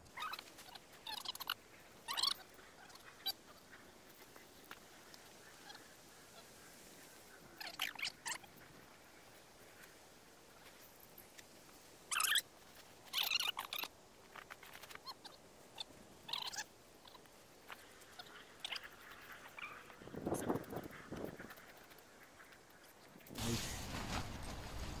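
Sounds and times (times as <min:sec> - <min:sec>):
tent nylon rustling: 0:23.3 - 0:25.0.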